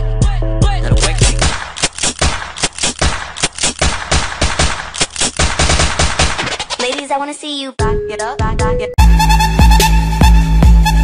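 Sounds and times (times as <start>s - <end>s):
machine-gun fire sound effect: 1.3s - 6.9s
dance track beat: 5.5s - 11.0s.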